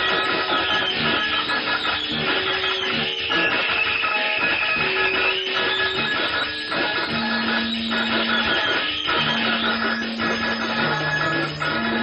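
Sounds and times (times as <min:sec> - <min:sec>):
noisy improvised guitar music: 0:00.0 - 0:12.0.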